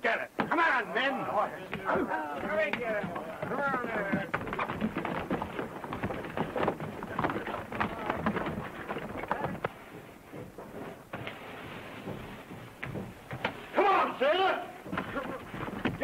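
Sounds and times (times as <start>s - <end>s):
crackles and knocks: 1.6s - 13.8s, 14.8s - 16.0s.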